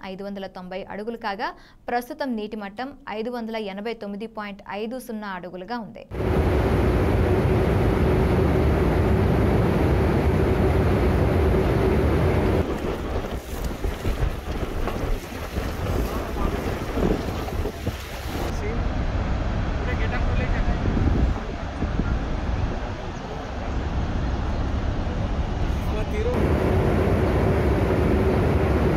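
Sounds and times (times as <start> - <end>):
steady low hum: 6.1 - 28.9
wind buffeting microphone: 6.1 - 28.9
waves slapping: 10.0 - 18.7
water splashing and swirling: 12.6 - 18.5.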